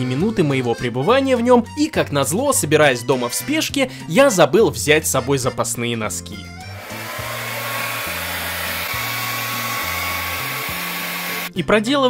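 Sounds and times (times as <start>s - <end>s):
hair dryer running: 6.7s - 11.5s.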